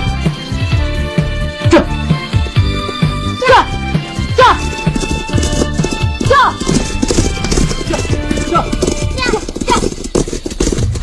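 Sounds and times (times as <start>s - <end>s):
horses galloping: 2.1s - 11.0s.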